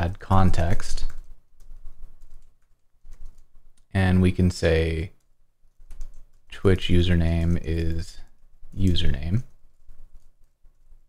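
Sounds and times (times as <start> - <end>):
fast keyboard typing: 0.4 - 3.9, 5.1 - 11.0.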